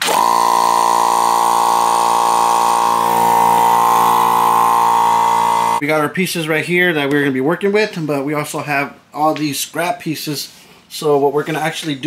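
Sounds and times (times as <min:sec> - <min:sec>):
air compressor running: 0:00.0 - 0:05.8.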